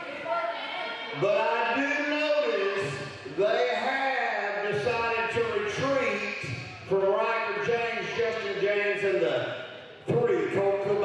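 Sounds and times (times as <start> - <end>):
man calling out: 1.1 - 6.2.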